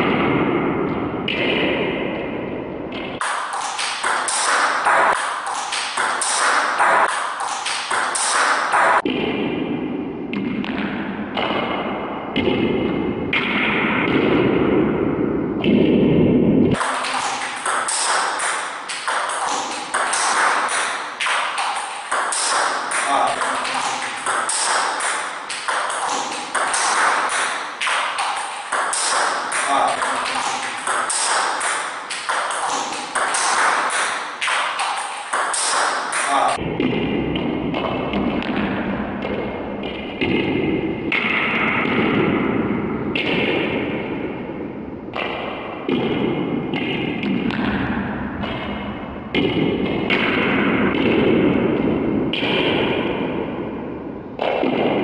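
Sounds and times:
table tennis balls hit by paddles: 0:00.0 - 0:55.0
ball bouncing on table: 0:02.9 - 0:09.4, 0:16.7 - 0:42.4, 0:45.2 - 0:47.9.

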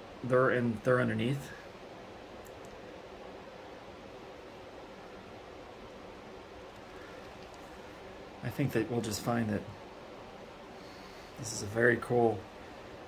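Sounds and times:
faint hiss: 0:00.0 - 0:13.0.

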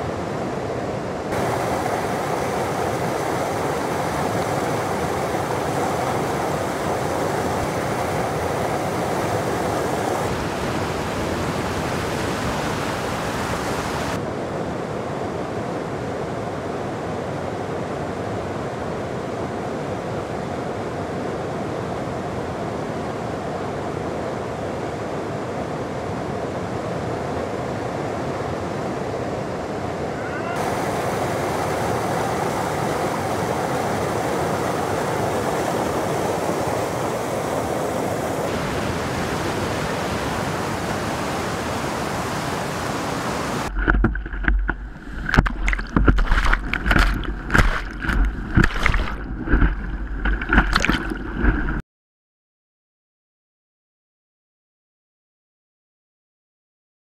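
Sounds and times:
whitewater rapids rushing: 0:01.3 - 0:14.2, 0:29.6 - 0:51.6.

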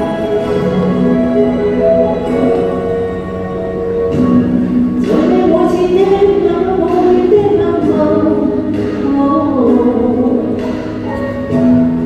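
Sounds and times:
instrumental accompaniment with soft beat: 0:00.0 - 0:12.0
woman singing pop ballad: 0:05.0 - 0:11.7.

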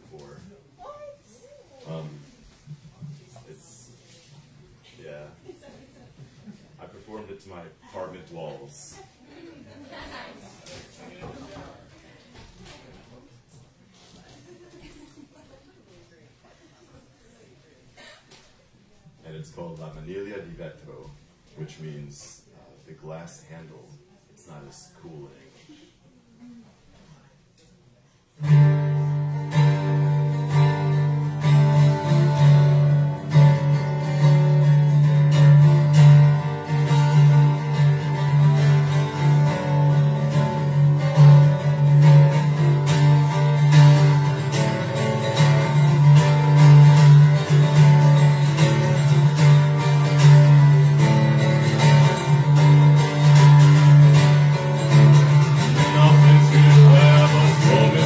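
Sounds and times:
acoustic guitar strumming: 0:28.4 - 0:58.0.

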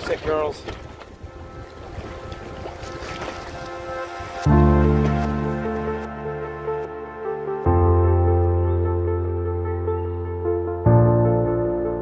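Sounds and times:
boat and sea noise: 0:00.0 - 0:10.5
loud sustained bass chord: 0:04.4 - 0:12.0.

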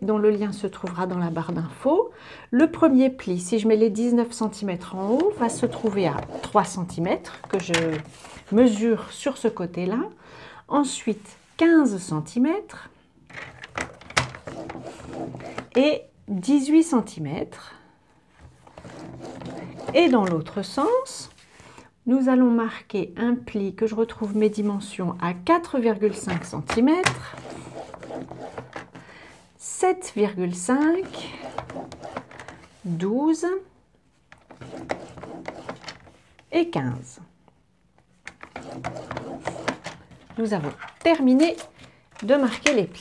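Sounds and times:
blade scraping cardstock: 0:04.9 - 0:06.9, 0:18.7 - 0:20.4, 0:34.5 - 0:36.0, 0:38.4 - 0:39.9.

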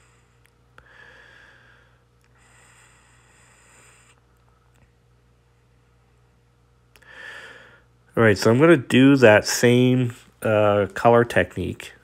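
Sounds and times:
person breathing softly: 0:00.0 - 0:04.3, 0:07.0 - 0:08.0
faint low hum: 0:00.0 - 0:12.0.

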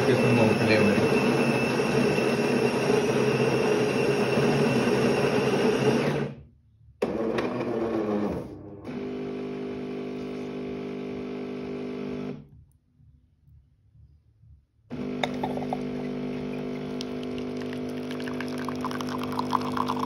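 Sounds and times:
coffee grinder running: 0:00.0 - 0:06.3, 0:15.0 - 0:20.0
coffee machine pump humming: 0:14.9 - 0:20.0.

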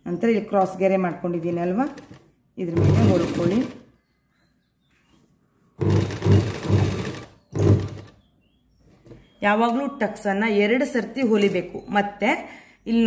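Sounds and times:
sewing machine stitching: 0:01.8 - 0:03.8, 0:05.8 - 0:08.2.

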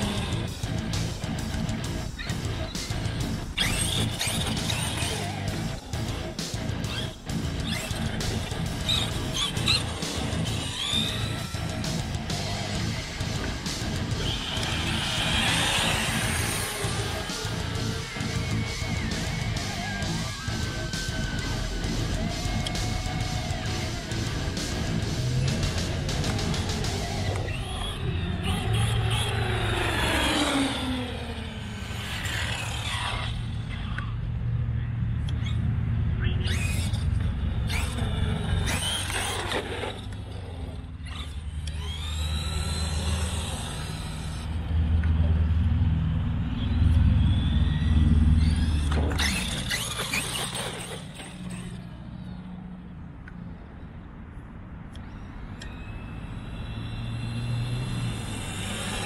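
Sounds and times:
electric motors whining: 0:00.0 - 0:53.6, 0:54.9 - 0:59.0.

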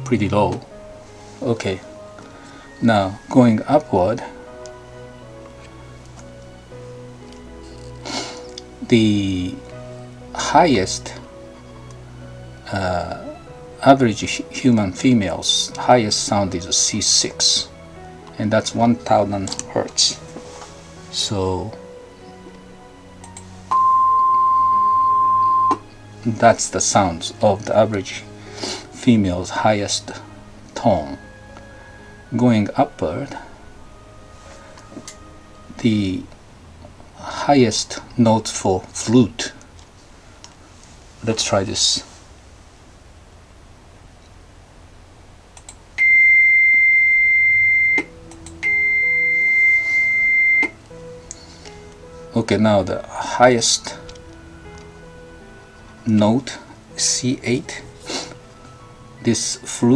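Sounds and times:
plain high electronic tone: 0:23.7 - 0:25.8, 0:46.0 - 0:50.8
soft clicks: 0:45.5 - 0:45.8, 0:48.0 - 0:48.6.

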